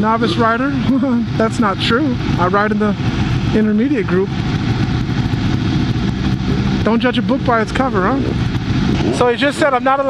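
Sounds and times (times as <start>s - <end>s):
motorcycle engines idling: 0.0s - 10.0s.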